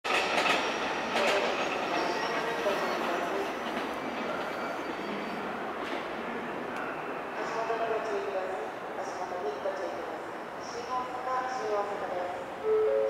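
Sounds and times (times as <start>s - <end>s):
train wheels on rails: 0.1s - 6.9s.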